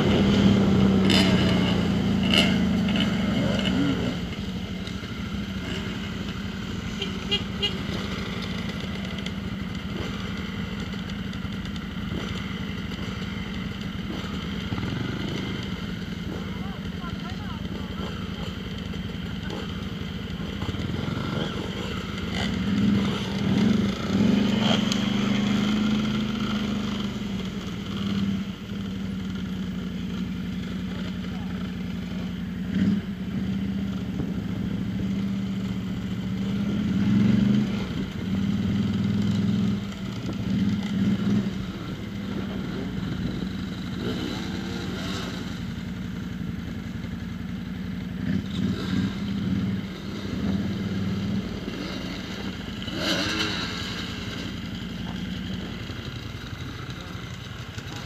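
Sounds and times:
off-road vehicle engine idling and revving: 0:00.0 - 0:58.0.

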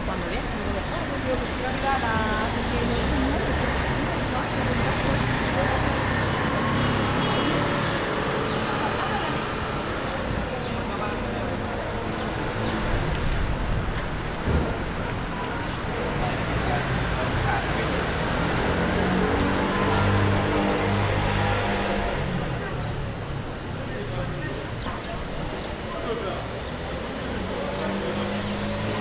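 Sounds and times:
road traffic: 0:00.0 - 0:29.0.

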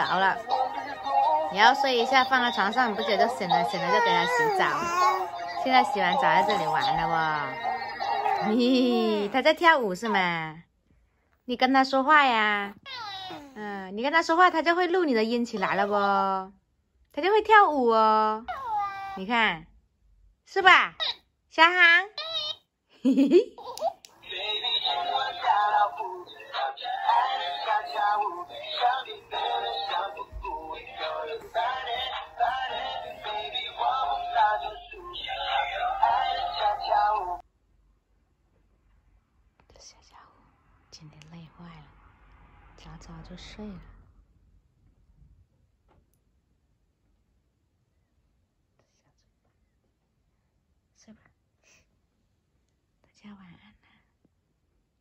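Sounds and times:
toy singing through speaker: 0:00.0 - 0:09.3, 0:24.2 - 0:37.4
woman whispering: 0:08.4 - 0:10.2, 0:39.6 - 0:40.4, 0:48.8 - 0:49.4, 0:53.0 - 0:54.2.

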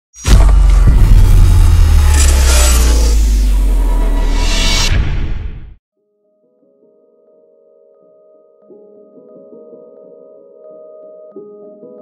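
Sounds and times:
loud deep rumble: 0:00.3 - 0:05.8.

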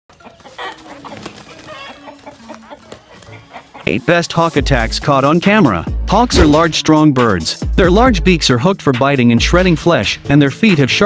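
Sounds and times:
chickens clucking and squawking: 0:00.1 - 0:04.6.

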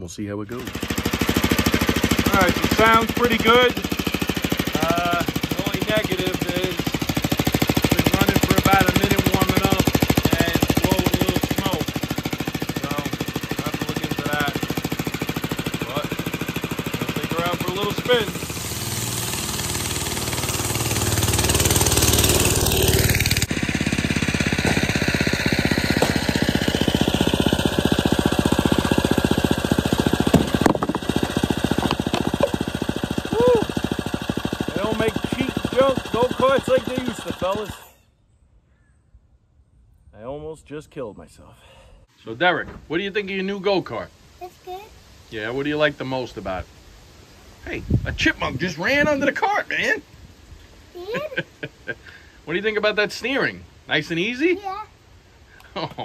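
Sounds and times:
go-kart engine running: 0:00.5 - 0:37.9.

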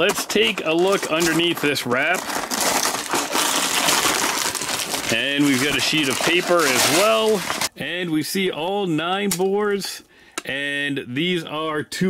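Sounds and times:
foil wrap crinkling and ripping: 0:00.0 - 0:07.7.

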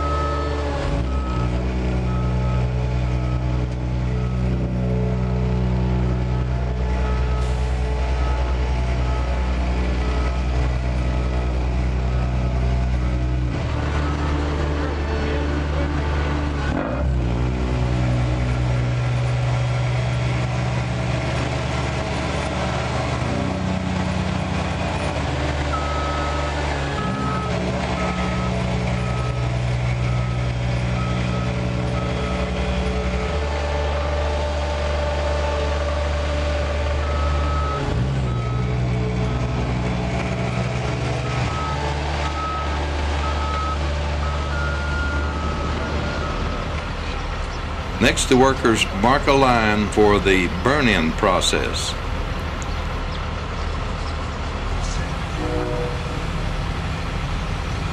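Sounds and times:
reversing alarm beeping: 0:00.0 - 0:05.4, 0:06.2 - 0:11.4, 0:25.7 - 0:33.4, 0:36.9 - 0:39.6, 0:40.6 - 0:46.7
asphalt roller diesel engine: 0:00.0 - 0:57.9.

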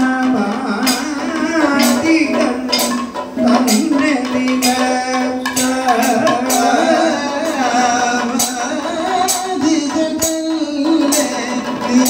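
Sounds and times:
drums striking: 0:00.0 - 0:12.0
hand cymbals and gong clinking: 0:00.0 - 0:12.0
man singing long sliding notes: 0:00.0 - 0:12.0.

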